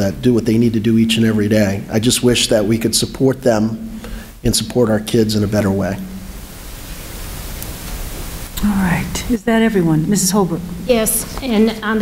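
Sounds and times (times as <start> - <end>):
steady recording hiss: 0.0 - 12.0.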